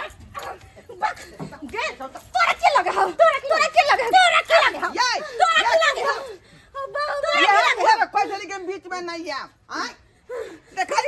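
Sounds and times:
people crying out and yelping: 0.0s - 8.9s
people shouting: 2.3s - 8.0s.

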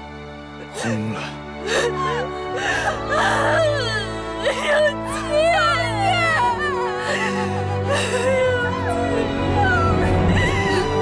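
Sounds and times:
dramatic background score: 0.0s - 11.0s
woman crying and wailing: 1.6s - 11.0s.

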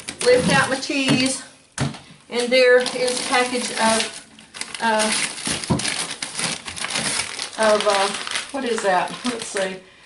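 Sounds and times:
plastic packaging crinkling: 0.0s - 9.9s.

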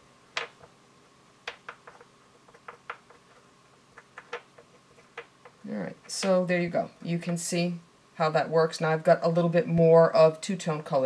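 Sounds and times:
fingertips tapping clay: 1.5s - 6.4s.

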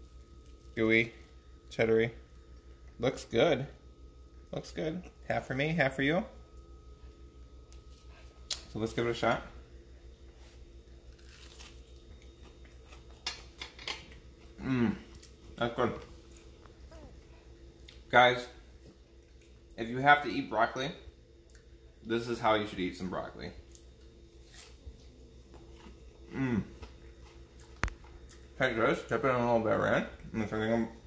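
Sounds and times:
low electrical hum: 0.0s - 31.0s
person chewing crunchy food: 10.8s - 16.8s, 23.7s - 28.6s.

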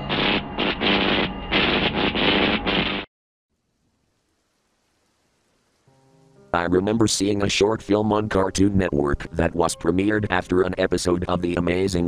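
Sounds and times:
faint hiss: 3.5s - 7.7s
faint steady chord: 4.1s - 7.5s.

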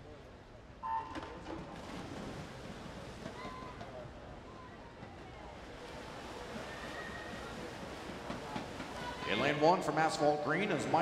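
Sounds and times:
swimmers splashing: 1.3s - 4.0s, 5.6s - 11.0s
crowd noise: 2.5s - 11.0s.

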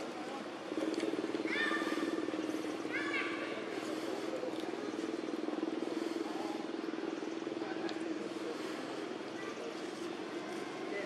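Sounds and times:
engine humming: 0.0s - 11.0s
outdoor background noise: 0.0s - 11.0s.

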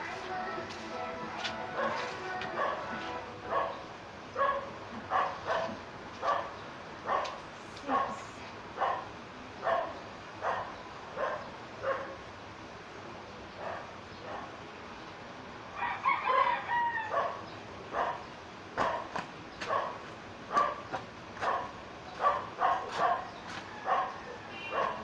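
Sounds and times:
dog barking: 2.6s - 3.8s, 4.4s - 8.2s, 8.8s - 12.2s, 13.6s - 14.5s, 17.1s - 25.0s.

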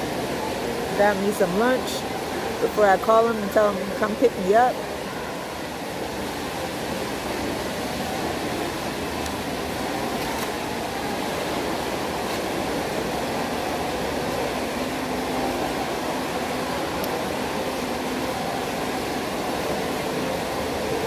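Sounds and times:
air conditioning hiss: 0.0s - 21.0s.

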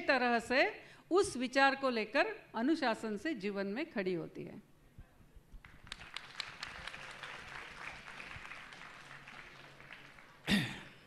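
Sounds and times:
audience applauding: 5.6s - 10.8s.

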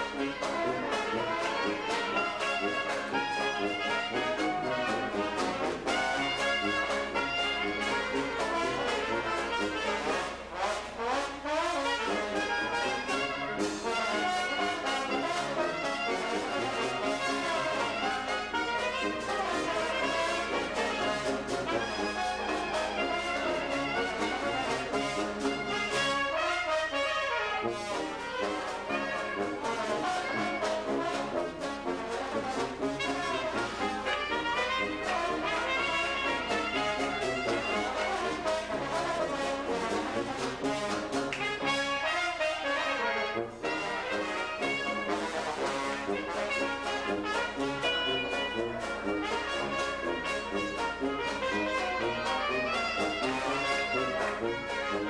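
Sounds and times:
clarinet: 0.0s - 55.0s
trombones playing: 0.0s - 55.0s
tuba: 0.0s - 55.0s.

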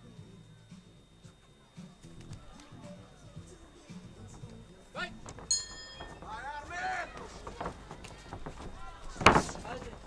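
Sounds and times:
people shouting: 4.8s - 10.0s
boxing ring bell strike: 5.5s - 6.2s.

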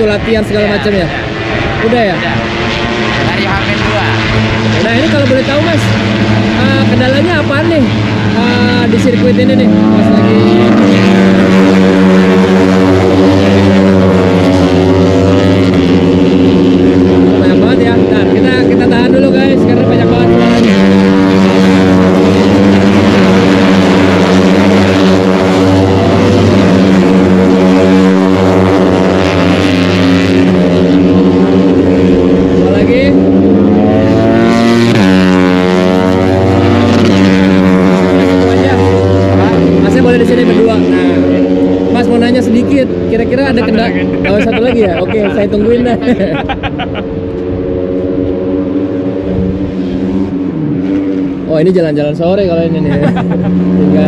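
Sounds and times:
racing motorcycles at high revs: 0.0s - 54.0s.

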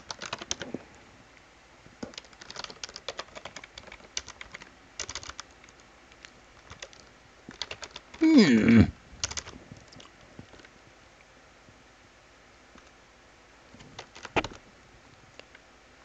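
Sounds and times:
computer keyboard typing: 0.0s - 0.7s, 2.0s - 5.8s, 6.6s - 8.2s, 9.2s - 9.5s, 14.0s - 14.6s.

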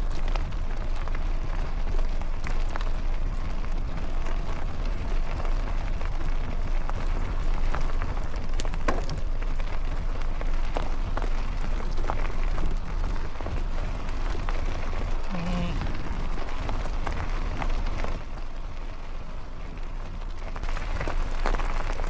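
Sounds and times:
tyres on stony ground: 0.0s - 22.0s
wind rumbling on microphone: 0.0s - 22.0s.

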